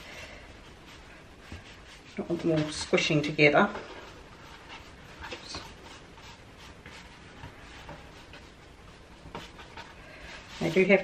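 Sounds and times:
hands rubbing dough: 0.0s - 11.0s.

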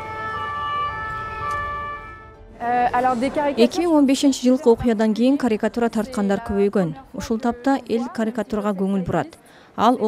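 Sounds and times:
emergency vehicle siren: 0.0s - 2.4s.

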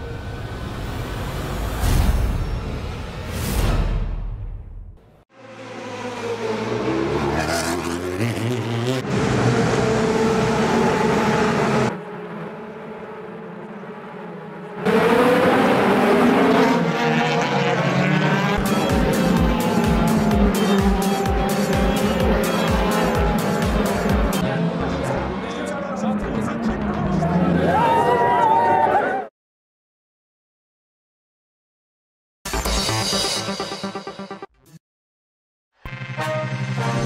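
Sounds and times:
racing car engines revving: 5.4s - 28.7s
music with steady beat: 18.6s - 24.4s.

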